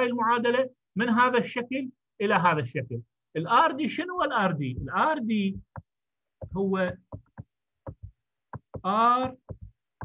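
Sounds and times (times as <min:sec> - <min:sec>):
man's voice: 0:00.0 - 0:05.7, 0:06.5 - 0:07.0, 0:08.8 - 0:09.5
stylus tapping on pen tablet: 0:04.8 - 0:10.0.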